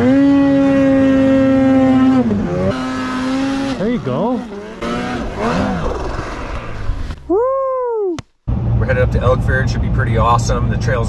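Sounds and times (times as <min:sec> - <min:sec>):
snowmobile engine revving: 0:00.0 - 0:07.2.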